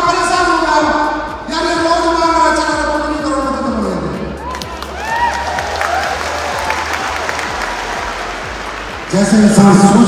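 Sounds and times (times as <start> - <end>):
audience applauding: 4.5 - 9.6.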